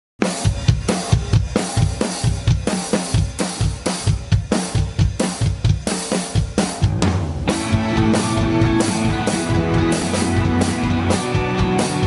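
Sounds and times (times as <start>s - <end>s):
drum kit playing a groove: 0.2s - 12.0s
recorded song track: 0.2s - 12.0s.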